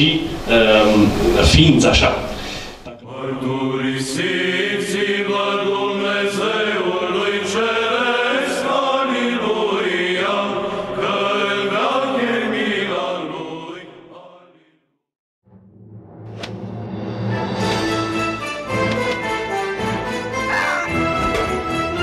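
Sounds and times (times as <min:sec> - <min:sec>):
voices chanting: 0:03.0 - 0:14.5, 0:19.8 - 0:22.0.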